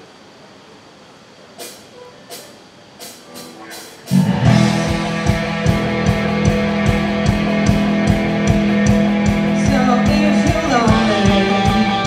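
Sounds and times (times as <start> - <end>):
stage and pa hum: 0.0 - 12.0
hissy cymbal taps: 1.6 - 9.6.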